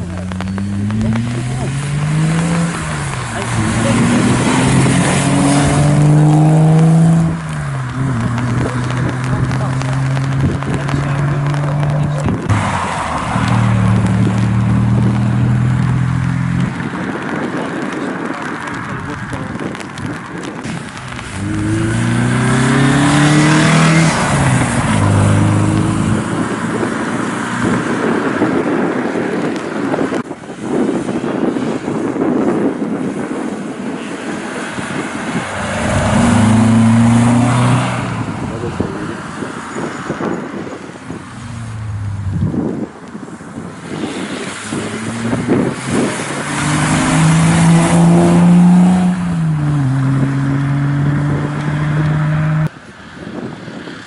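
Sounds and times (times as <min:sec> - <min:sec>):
rally cars accelerating past: 0:21.2 - 0:27.0, 0:34.6 - 0:38.4.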